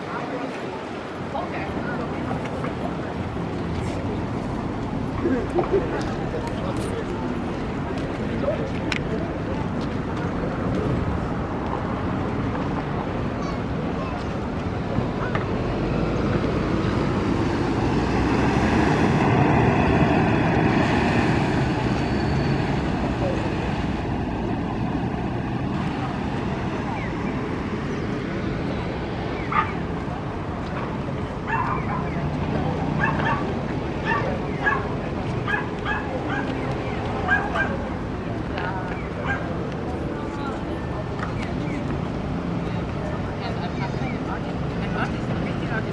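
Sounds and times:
outdoor background noise: 0.0s - 45.9s
small dog yapping: 33.0s - 33.4s.

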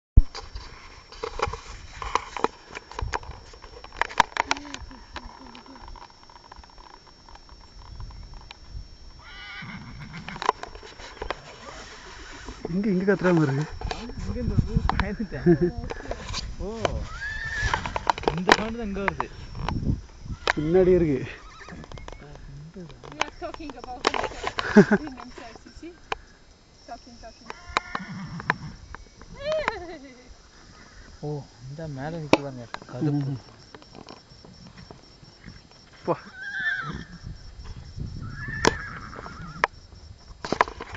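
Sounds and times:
faint scattered ticks: 0.2s - 40.9s
horse whinnying: 9.2s - 10.5s, 17.0s - 18.0s, 20.3s - 22.0s, 27.5s - 28.8s, 36.2s - 37.2s, 38.2s - 39.7s
sharp clicks: 21.7s - 26.6s.

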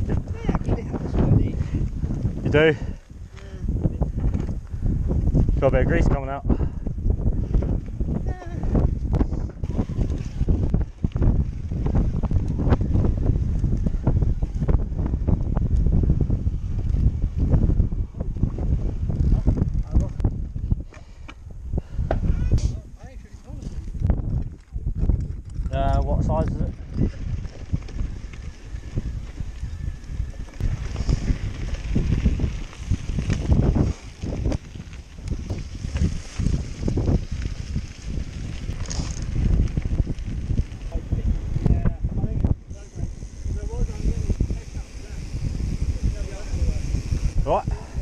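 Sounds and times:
rumbling wind noise: 0.0s - 48.0s.

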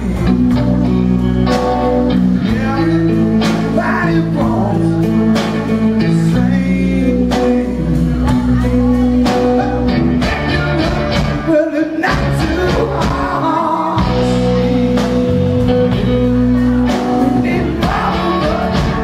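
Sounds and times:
drum kit beat: 0.0s - 19.0s
electric bass: 0.0s - 19.0s
electric guitar: 0.0s - 19.0s.

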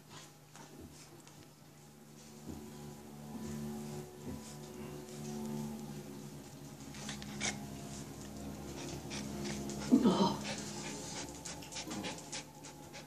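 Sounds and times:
steady low hum: 0.0s - 13.0s
dog panting: 6.9s - 13.0s.

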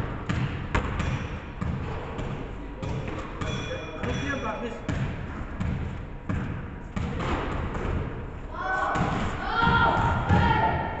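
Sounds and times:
basketball bouncing on wooden floor: 0.3s - 4.2s, 4.9s - 8.1s.

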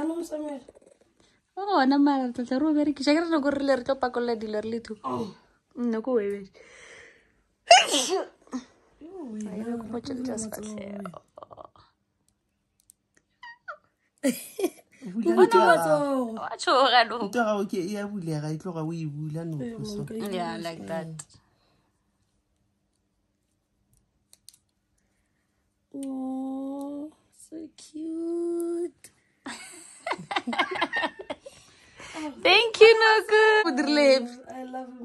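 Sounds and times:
person sneezing: 7.7s - 8.6s.

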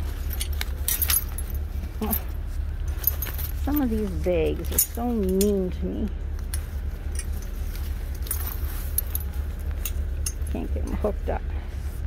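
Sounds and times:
metal hardware clinking: 0.0s - 11.1s
steady low hum: 0.0s - 12.0s.

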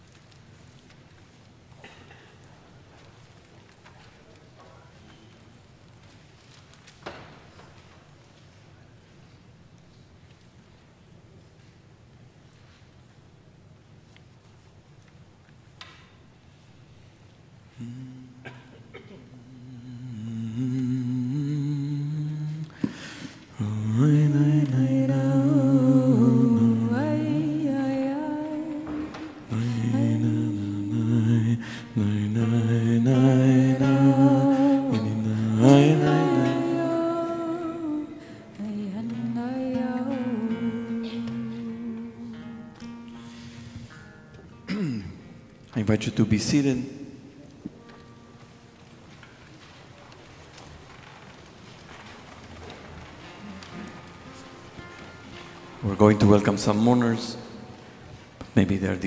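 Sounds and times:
voices humming a melody: 23.6s - 42.6s
rustling: 47.5s - 58.6s
shuffling feet: 47.6s - 56.2s
chairs creaking under weight: 47.7s - 56.2s.

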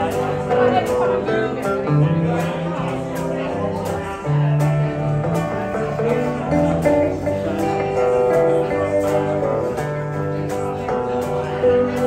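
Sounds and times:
country band playing: 0.0s - 12.0s.

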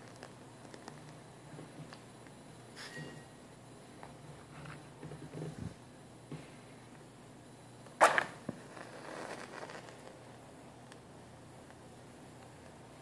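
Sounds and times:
soft handling sounds: 8.5s - 11.0s.

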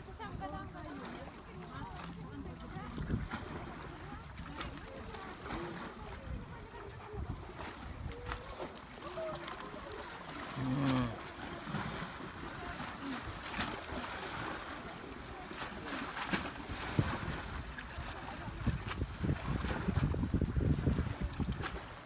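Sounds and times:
faint voices: 0.0s - 20.0s
light water sounds: 0.0s - 22.0s
wind buffeting microphone: 1.8s - 8.7s, 16.2s - 22.0s.

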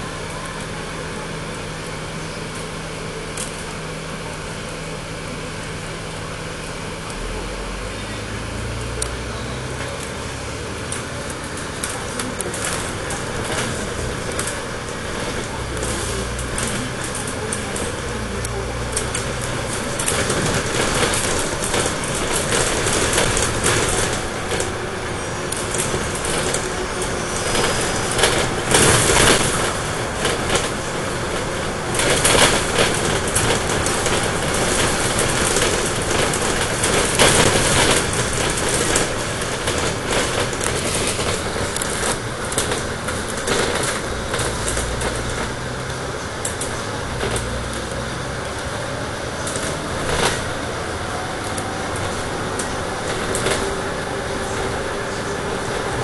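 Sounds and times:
bus body rattling: 0.0s - 56.0s
bus engine drone: 0.0s - 56.0s
road noise: 0.0s - 56.0s.

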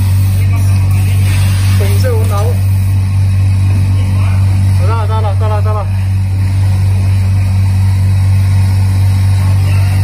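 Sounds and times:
packing machinery humming: 0.0s - 10.0s.

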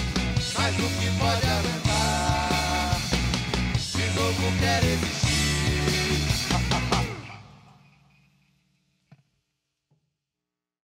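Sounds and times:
rock band final chord: 0.0s - 7.6s.

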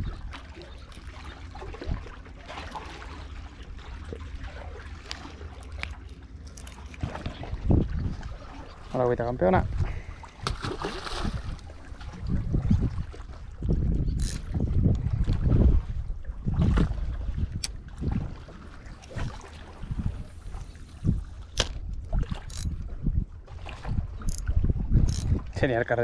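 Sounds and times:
wind buffeting microphone: 0.0s - 0.4s, 7.0s - 26.0s.

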